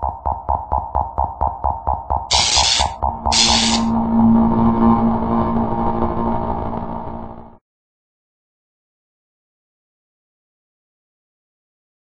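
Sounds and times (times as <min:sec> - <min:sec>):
steady low drone: 0:00.0 - 0:07.6
hiss-like noise swell: 0:02.3 - 0:03.9
sustained synth chord: 0:02.3 - 0:07.6.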